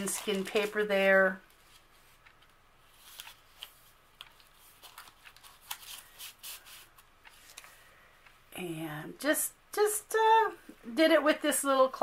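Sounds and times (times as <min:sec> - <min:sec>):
paper tags rustling and tapping: 0:00.0 - 0:07.8.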